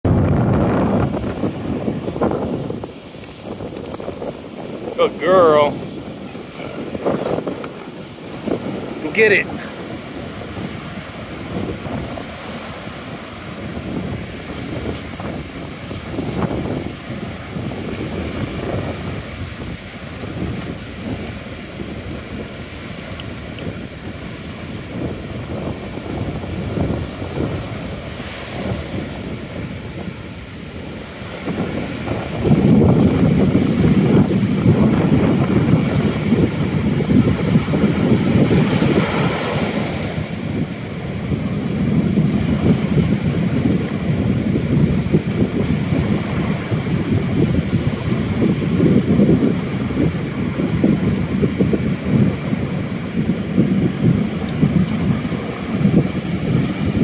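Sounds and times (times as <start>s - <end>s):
ocean surf rushing: 0.0s - 57.0s
wind buffeting microphone: 0.0s - 57.0s.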